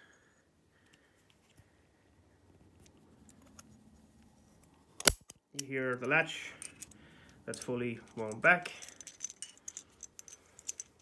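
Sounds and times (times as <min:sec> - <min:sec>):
faint ticks and scrapes: 0:02.5 - 0:04.9.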